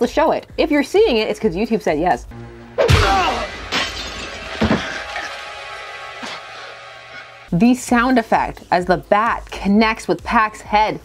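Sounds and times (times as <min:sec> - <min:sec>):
bat blows: 0:02.8 - 0:03.8
glass shattering: 0:02.9 - 0:07.5.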